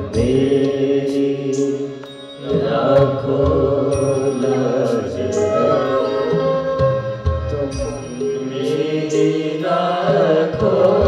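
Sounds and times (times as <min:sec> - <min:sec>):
sharp percussion strikes: 0:00.0 - 0:11.0
voices singing long notes: 0:00.0 - 0:11.0.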